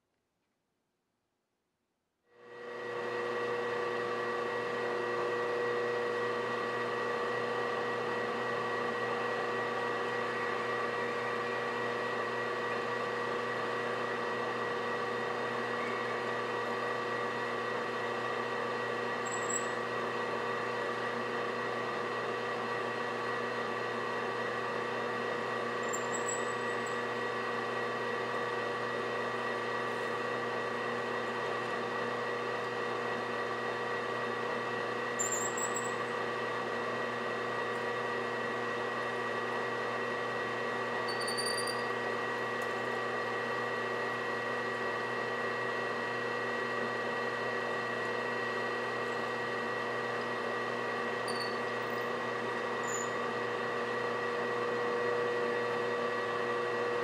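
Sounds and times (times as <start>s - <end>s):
lathe motor whine: 2.4s - 57.0s.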